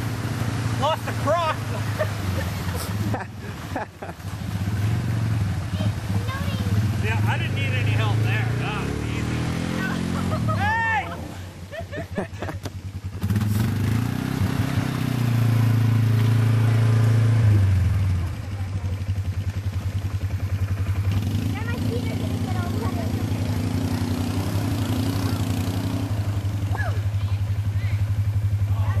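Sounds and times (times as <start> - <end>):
atv engine revving: 0.0 - 29.0.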